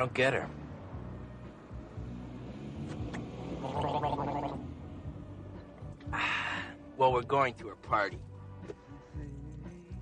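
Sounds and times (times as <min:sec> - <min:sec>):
person gulping a drink: 0:03.6 - 0:04.6.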